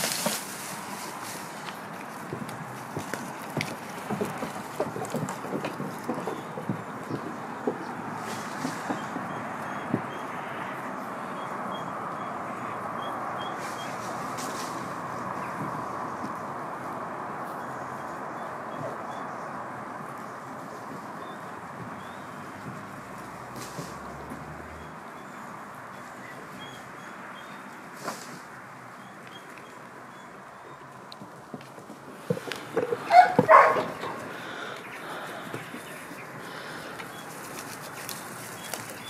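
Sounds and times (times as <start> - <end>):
leafy branches rustling: 0.0 - 10.4, 13.2 - 39.0
outdoor background hiss: 0.0 - 39.0
goat hooves knocking on wood: 1.7 - 10.2, 31.2 - 34.2.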